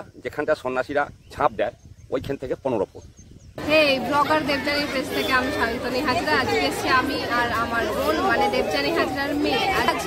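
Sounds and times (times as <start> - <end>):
crowd chattering: 3.6 - 10.0
woman speaking: 3.6 - 10.0.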